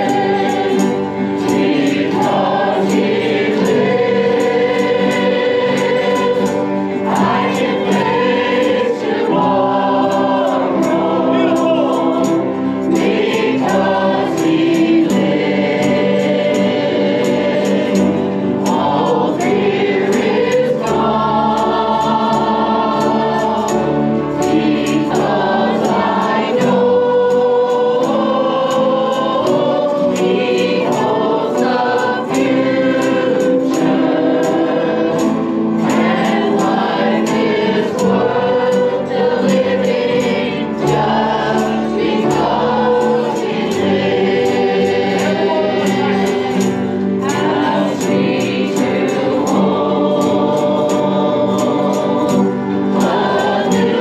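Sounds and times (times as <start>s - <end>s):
women singing gospel: 0.0s - 54.0s.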